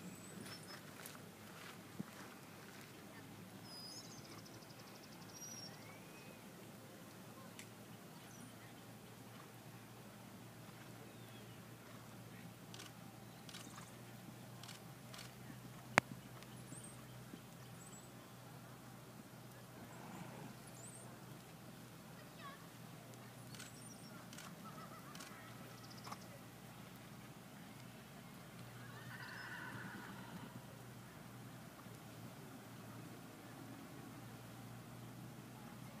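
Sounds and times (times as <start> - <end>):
horse whinnying: 29.0 - 30.5.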